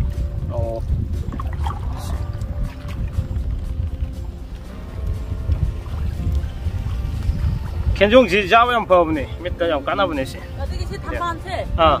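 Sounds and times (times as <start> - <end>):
faint music: 0.0 - 12.0
wind rumbling on microphone: 0.0 - 12.0.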